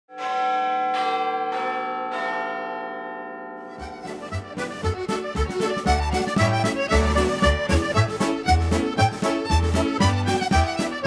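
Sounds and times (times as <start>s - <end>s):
bells ringing: 0.1s - 7.6s
dance band with steady beat: 3.8s - 11.0s.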